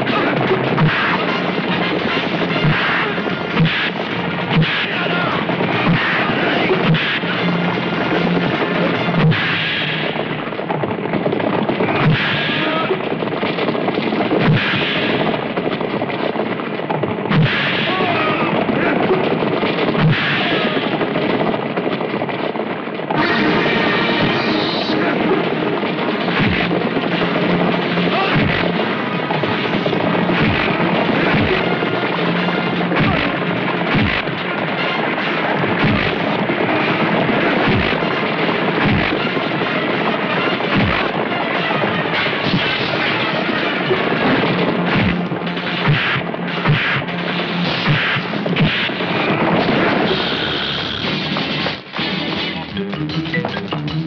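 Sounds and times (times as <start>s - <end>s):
galloping horses: 0.0s - 54.0s
sharp bangs: 0.0s - 54.0s
loud action music: 23.2s - 54.0s.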